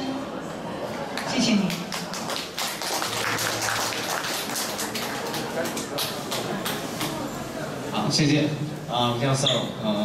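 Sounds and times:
audience clapping: 1.1 - 7.2.

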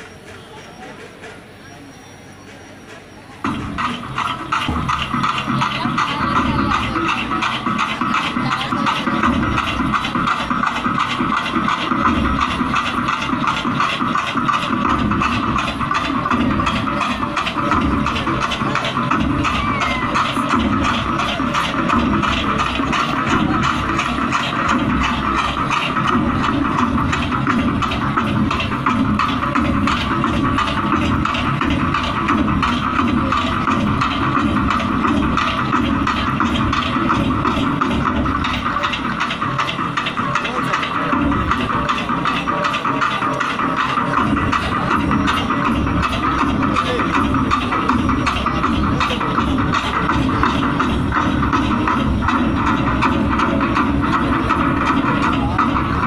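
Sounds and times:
barrel drums beaten with sticks: 3.4 - 56.0.

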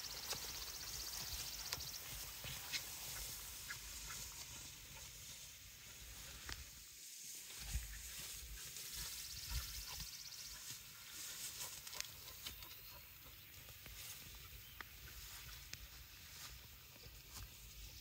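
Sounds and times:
people walking through grass: 0.0 - 18.0.

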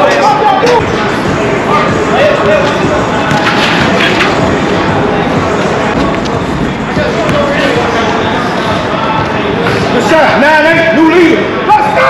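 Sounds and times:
scattered voices: 0.0 - 12.0.

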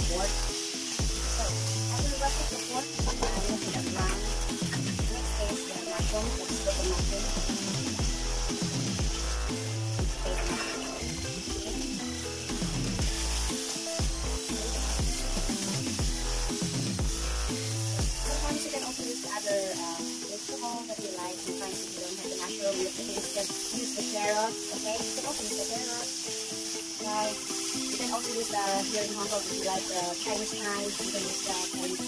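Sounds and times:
background music with bass: 0.0 - 19.3
meat sizzling in a wok: 0.0 - 32.0
spatula pushing food: 0.3 - 6.8, 10.1 - 11.2.

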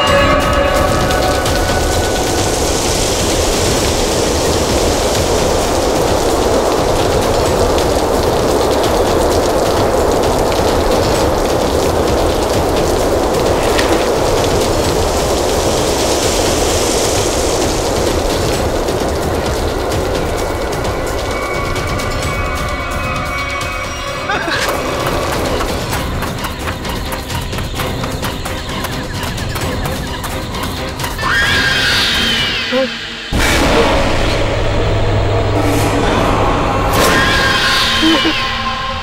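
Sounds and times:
wind-storm rushing: 0.0 - 39.0.

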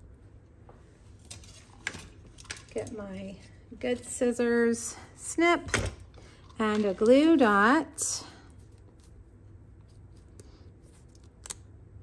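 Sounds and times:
fingers handling backing strip: 9.8 - 11.7.

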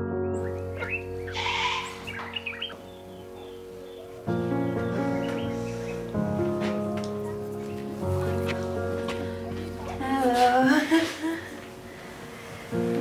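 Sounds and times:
birds chirping: 0.0 - 10.0
soft background music chords: 0.0 - 13.0.

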